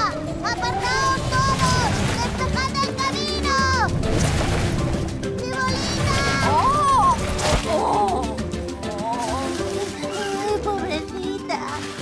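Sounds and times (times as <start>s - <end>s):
cartoon music: 0.0s - 4.2s, 5.0s - 12.0s.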